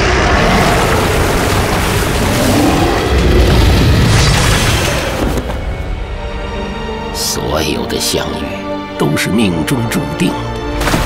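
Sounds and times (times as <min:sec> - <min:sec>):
booming rumbling sound effects: 0:00.0 - 0:05.8
music: 0:02.0 - 0:11.0.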